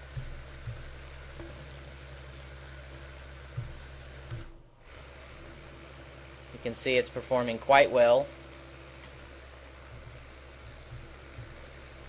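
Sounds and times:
small motor humming: 0.0s - 12.0s.

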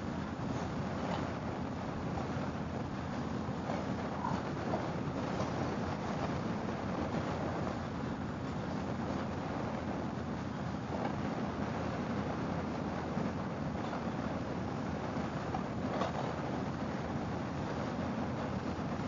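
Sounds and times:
wind rushing over microphone: 0.0s - 19.0s.

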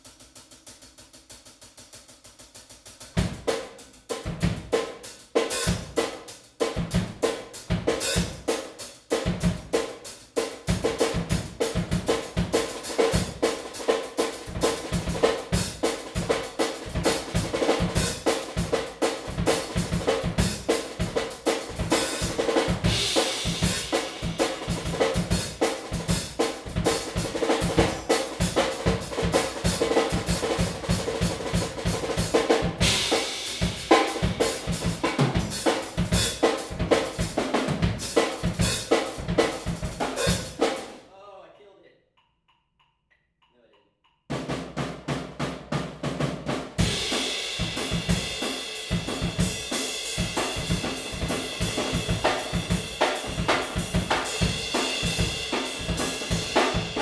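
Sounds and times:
snare and bass drum strokes: 0.0s - 41.0s, 44.3s - 57.0s
cymbals: 3.1s - 41.0s, 46.8s - 57.0s.

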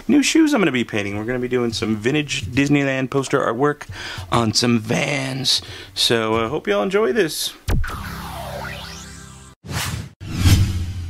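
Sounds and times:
whooshes: 7.7s - 11.0s.

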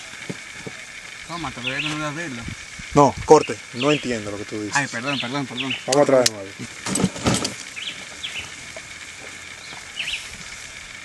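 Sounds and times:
faint high hum: 0.0s - 11.0s
bird chirping: 1.4s - 2.2s, 3.3s - 6.1s, 7.6s - 8.8s, 9.5s - 10.8s
rustle or knock: 6.7s - 7.7s.

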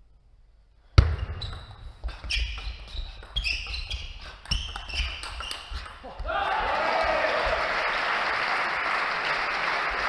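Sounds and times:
shoe squeaks on floor: 1.0s - 6.2s.

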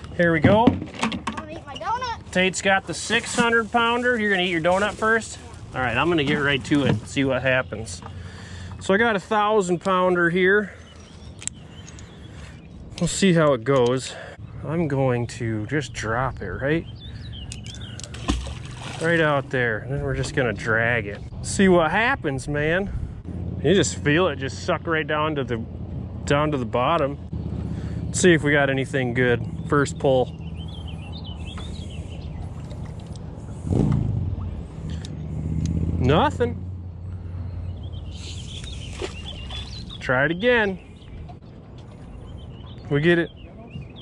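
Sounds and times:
birds chirping: 0.0s - 0.7s, 1.4s - 44.0s.

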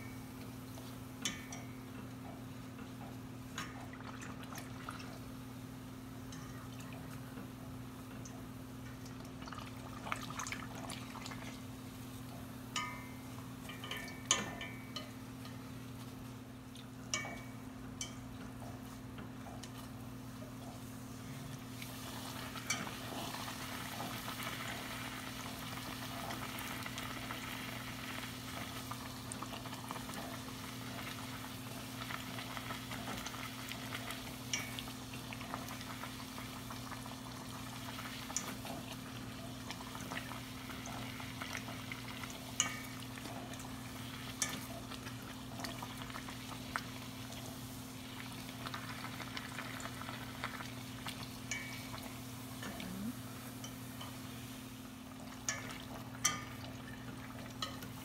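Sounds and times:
dough sizzling in hot oil: 7.8s - 58.0s.

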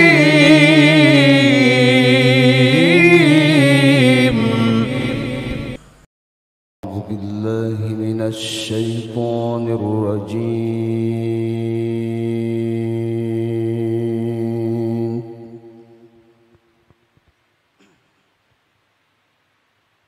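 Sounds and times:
man chanting recitation into microphone: 6.8s - 15.7s.

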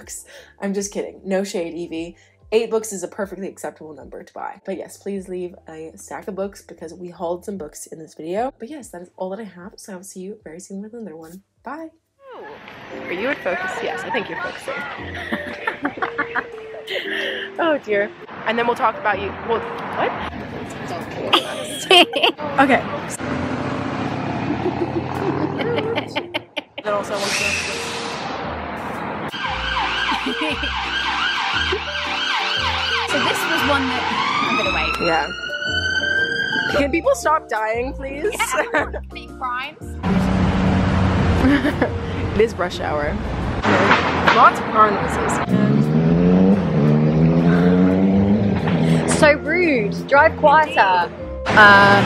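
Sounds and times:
vehicle passing by: 12.6s - 21.6s, 22.3s - 37.0s, 40.0s - 52.0s
loud vehicle engine running: 22.6s - 26.2s, 40.0s - 50.6s
person speaking: 37.9s - 39.4s.

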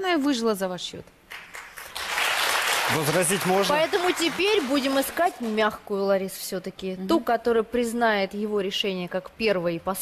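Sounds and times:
audience applauding: 1.3s - 5.7s.

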